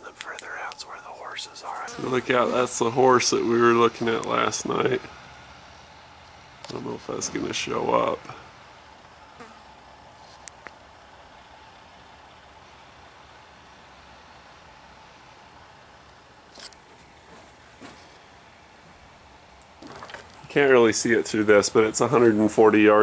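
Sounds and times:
steady background hiss: 0:00.0 - 0:23.0
faint clicks: 0:00.1 - 0:01.0, 0:10.4 - 0:10.8.

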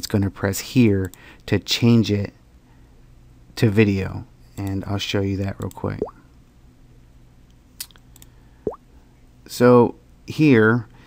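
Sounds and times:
wet mouth click: 0:07.8 - 0:08.0.

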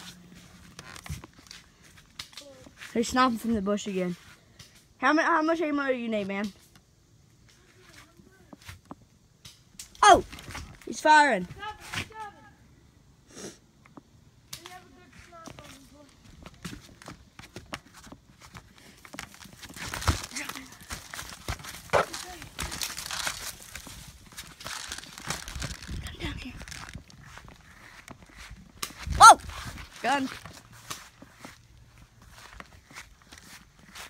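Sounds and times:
loud shout: 0:29.1 - 0:29.4.

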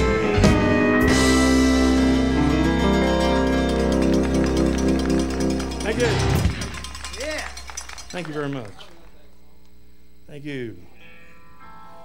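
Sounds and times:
country band final chord: 0:00.0 - 0:06.8
electric guitar ringing: 0:00.0 - 0:08.7, 0:09.8 - 0:12.0.

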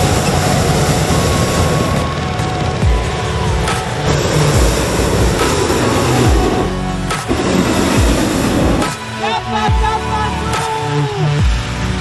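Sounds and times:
propane burner roaring: 0:00.0 - 0:09.2
background music with thudding beat: 0:00.0 - 0:12.0.

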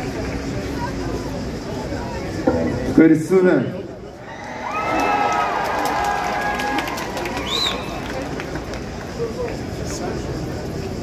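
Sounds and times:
crowd cheering and shouting: 0:04.2 - 0:07.9.

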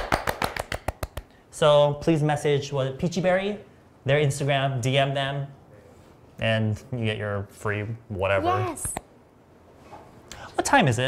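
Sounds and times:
people clapping hands: 0:00.0 - 0:01.3.

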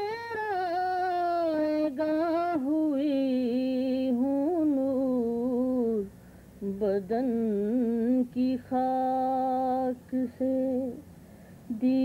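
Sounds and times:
woman singing unaccompanied: 0:00.0 - 0:11.1, 0:11.7 - 0:12.0.

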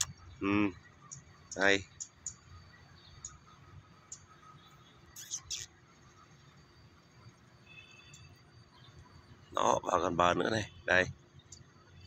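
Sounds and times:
faint chirp: 0:00.0 - 0:12.0.

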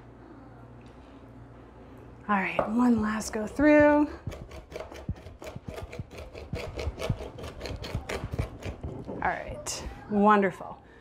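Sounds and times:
knife chopping on board: 0:03.9 - 0:09.0.

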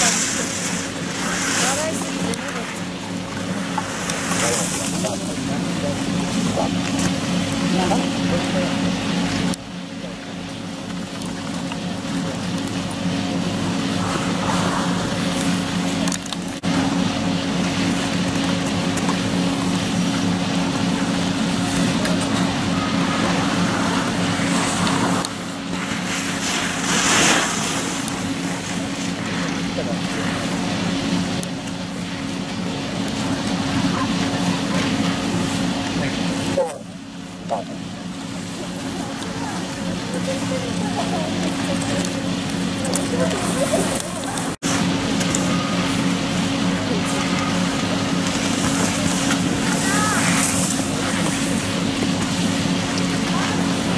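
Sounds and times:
low mechanical hum: 0:00.0 - 0:53.9.

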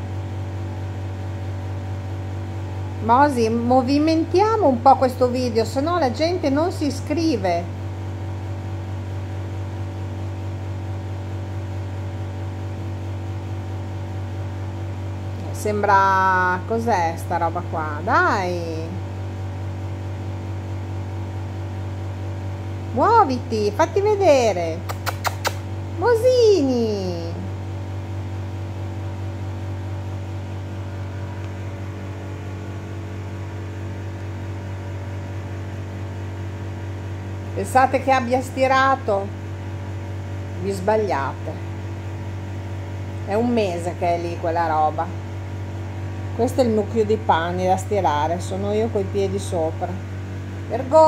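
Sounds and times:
appliance motor hum: 0:00.0 - 0:51.0.

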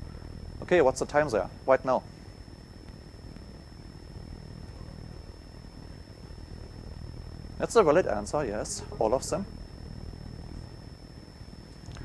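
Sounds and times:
faint high-pitched whine: 0:00.0 - 0:12.0
low room hum: 0:00.0 - 0:12.0.

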